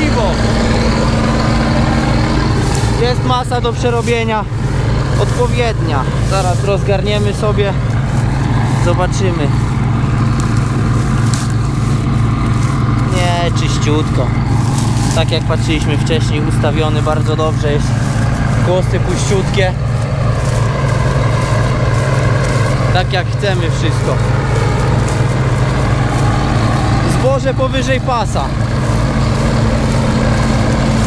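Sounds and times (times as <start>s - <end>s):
diesel engine under load: 0.0s - 31.0s.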